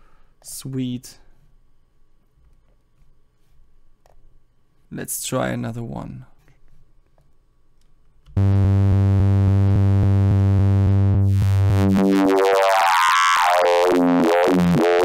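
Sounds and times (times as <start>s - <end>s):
low buzzy synthesizer tone: 8.4s - 15.0s.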